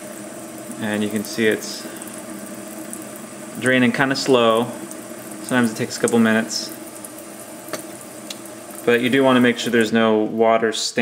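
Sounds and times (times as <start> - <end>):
faint water drips: 0.0 - 10.8
water trickling into sink: 0.0 - 10.8.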